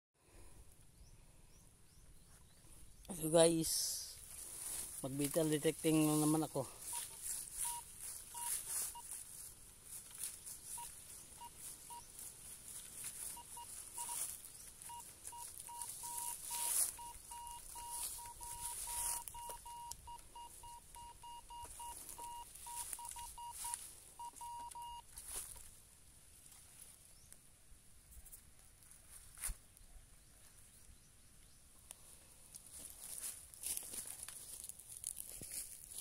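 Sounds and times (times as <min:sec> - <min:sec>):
faint rustles and crunches: 0:04.2 - 0:30.8, 0:31.8 - 0:36.0
metal detector beeping: 0:05.0 - 0:25.1.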